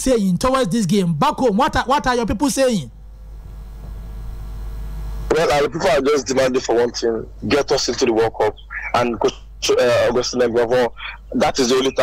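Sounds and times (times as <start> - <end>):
telephone line hum and hiss: 1.3 - 12.0.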